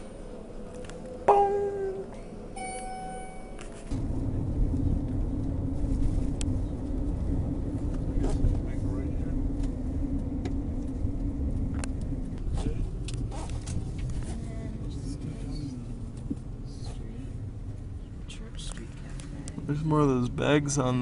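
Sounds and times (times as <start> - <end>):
car cabin rumble while driving: 0.0 - 21.0
elevator chime: 1.3 - 3.7.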